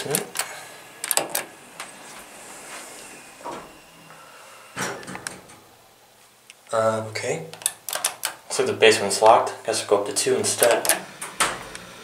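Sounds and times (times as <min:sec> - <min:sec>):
elevator doors sliding shut: 0:00.0 - 0:05.7, 0:10.6 - 0:12.0
elevator door clunk: 0:04.8 - 0:05.7.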